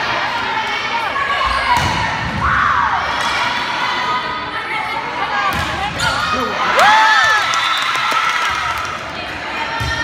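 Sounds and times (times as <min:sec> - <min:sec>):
crowd and players' voices: 0:00.0 - 0:10.0.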